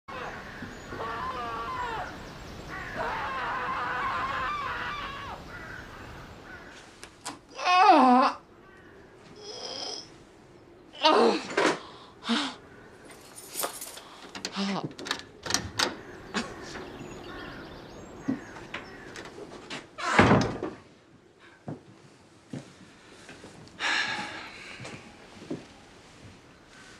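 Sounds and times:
birds wavering calls: 0.1s - 7.0s, 15.3s - 19.7s
door shutting with a bang: 20.1s - 20.8s.

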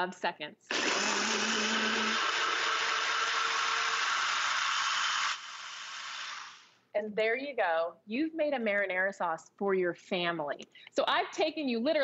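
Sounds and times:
blender blade spinning down: 0.7s - 6.7s
blender running: 0.7s - 6.7s.

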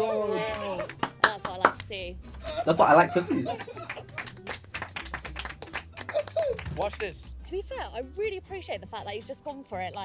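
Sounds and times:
people clapping: 0.3s - 2.0s, 3.2s - 7.3s.

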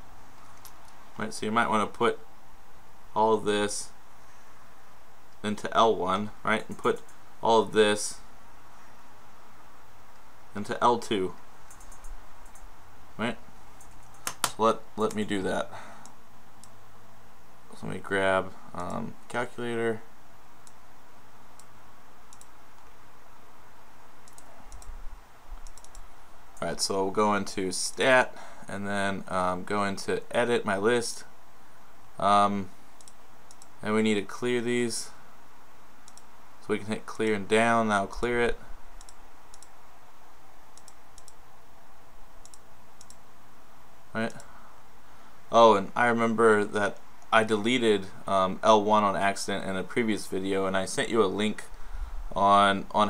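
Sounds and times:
steady hiss: 0.0s - 53.0s
computer mouse clicks: 0.4s - 1.0s, 11.6s - 12.7s, 13.8s - 15.2s, 22.3s - 23.0s, 24.2s - 26.7s, 33.0s - 33.8s, 36.0s - 36.3s, 39.0s - 39.8s, 40.7s - 41.4s, 42.4s - 43.2s, 44.3s - 44.5s.

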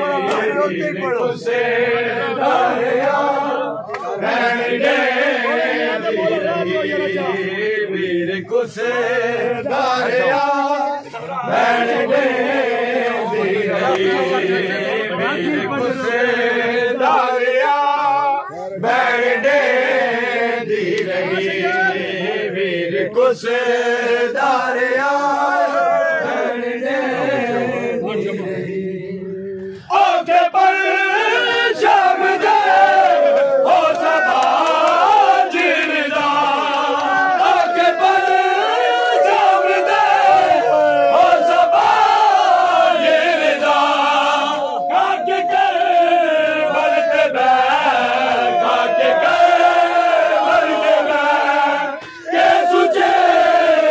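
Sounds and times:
men chanting a lament: 0.0s - 53.9s.

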